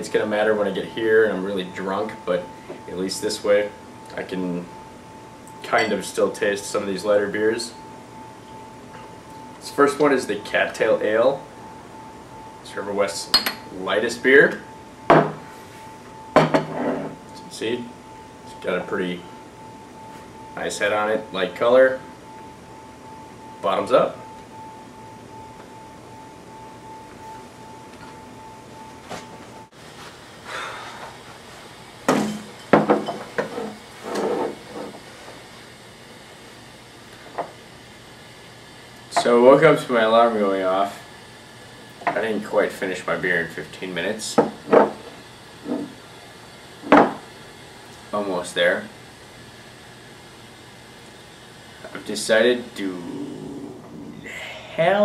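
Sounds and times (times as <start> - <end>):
faint high whine: 0.0 - 55.0
faint low hum: 51.8 - 55.0.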